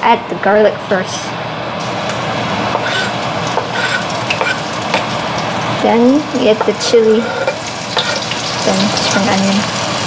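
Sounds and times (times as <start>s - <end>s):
garlic sizzling in hot oil: 1.8s - 10.0s
knife scraping cutting board: 2.7s - 5.0s, 6.6s - 8.4s.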